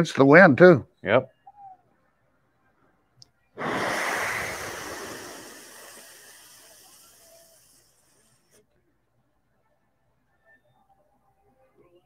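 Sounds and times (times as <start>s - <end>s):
faint click: 3.2s - 3.4s
breathy exhale: 3.6s - 8.6s.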